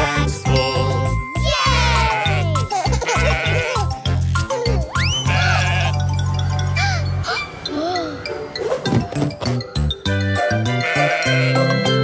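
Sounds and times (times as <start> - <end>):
upbeat nursery rhyme music: 0.0 - 12.0
cartoon sheep bleating: 1.5 - 3.8, 5.1 - 6.0, 10.8 - 11.8.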